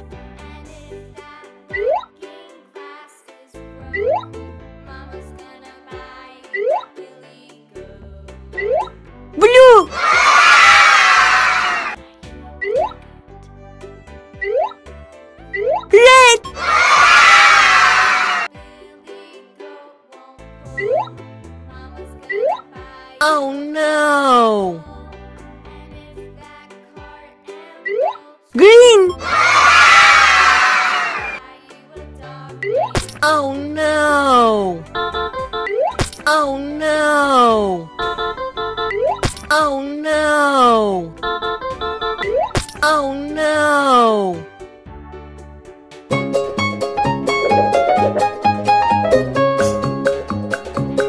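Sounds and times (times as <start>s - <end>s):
children's background music: 0.0s - 51.0s
crowd of children cheering: 9.4s - 12.0s, 16.0s - 18.5s, 28.6s - 31.4s
rising cartoon sound effects: 9.4s - 12.0s, 15.8s - 18.5s, 28.6s - 31.4s, 47.4s - 49.8s.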